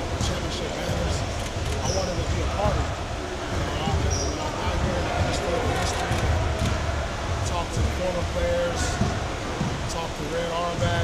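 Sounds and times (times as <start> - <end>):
man speaking into microphones: 0.0 - 3.0, 3.6 - 6.3, 7.4 - 9.1, 9.8 - 11.0.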